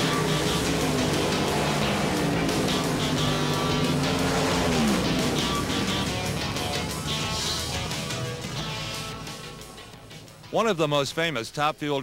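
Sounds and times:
race car engine running: 0.0 - 10.4
background music: 0.0 - 12.0.

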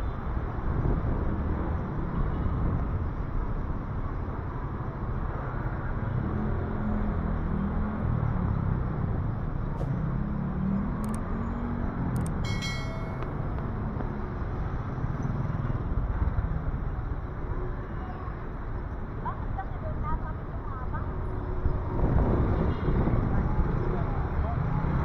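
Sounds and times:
cars passing slowly: 0.0 - 25.0
high-pitched ringing tone: 12.4 - 13.4.

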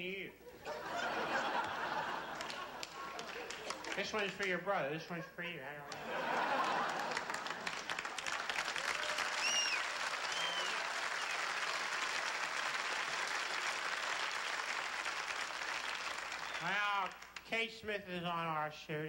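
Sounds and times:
crowd cheering: 0.5 - 4.4, 5.8 - 17.3
audience applauding: 0.7 - 4.5, 5.9 - 17.4.

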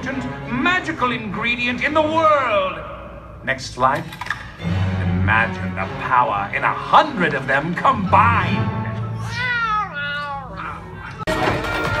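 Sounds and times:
low background score hum: 0.0 - 11.3
animated cat meowing: 9.2 - 10.7.

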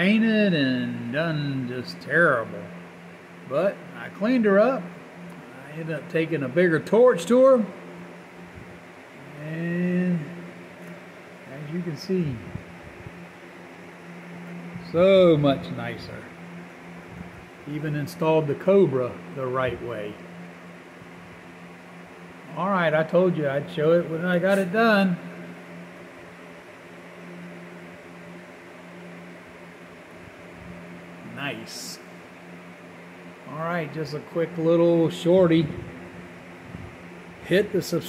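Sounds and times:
low machine hum: 0.0 - 38.0.

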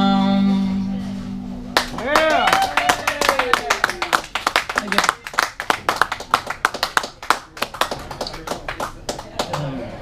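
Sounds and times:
small audience applauding: 1.8 - 10.0.

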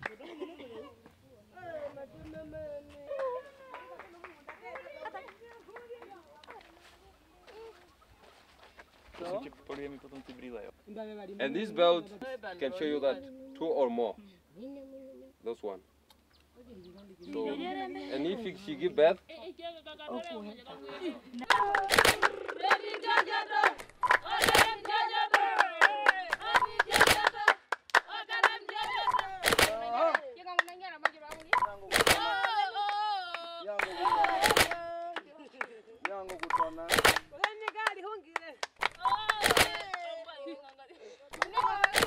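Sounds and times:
hand clapping: 0.0 - 0.2, 21.4 - 40.1, 41.3 - 42.0
women singing together: 21.5 - 29.8, 41.5 - 42.0.

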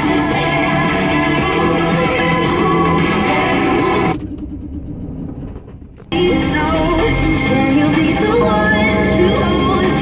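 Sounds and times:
vehicle engine rumble: 0.2 - 10.0.

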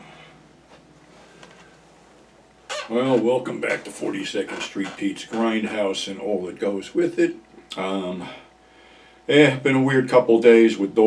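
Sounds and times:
man speaking loudly: 2.9 - 8.4, 9.3 - 11.0.

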